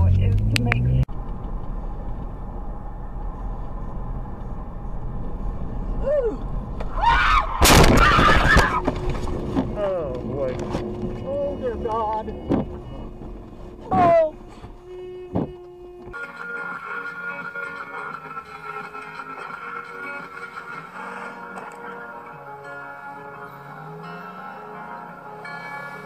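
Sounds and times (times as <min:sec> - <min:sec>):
road noise inside car: 0:00.0 - 0:26.0
car crash impact and scraping: 0:06.8 - 0:09.8.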